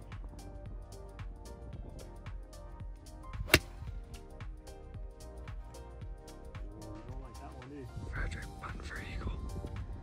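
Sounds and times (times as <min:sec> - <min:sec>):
golf club striking ball: 0:03.4 - 0:03.9.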